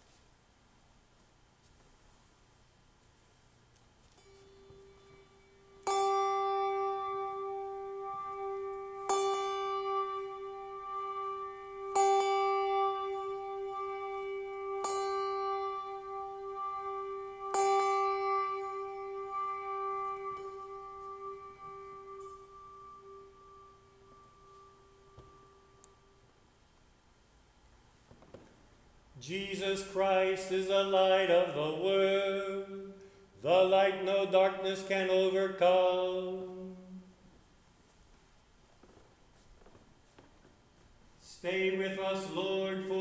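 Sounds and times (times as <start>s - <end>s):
bell ringing: 4.2s - 26.1s.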